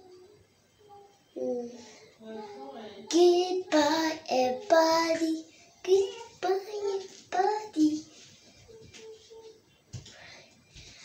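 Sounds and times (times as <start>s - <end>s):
young girl singing: 3.1s - 9.6s.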